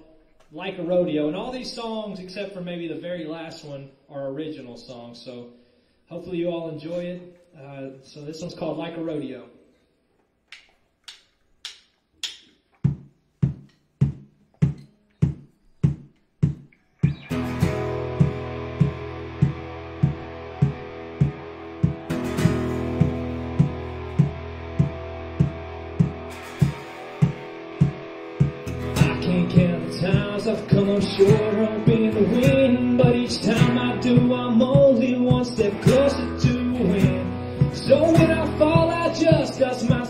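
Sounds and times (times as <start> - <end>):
drums beat: 11.7 - 40.0
acoustic guitar: 13.6 - 40.0
electric guitar: 16.9 - 40.0
person singing: 28.6 - 40.0.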